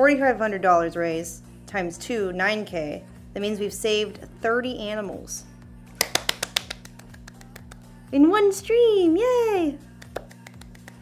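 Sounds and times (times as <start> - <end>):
quiet background music: 0.0 - 11.0
sharp hand claps: 6.0 - 7.9, 10.0 - 11.0.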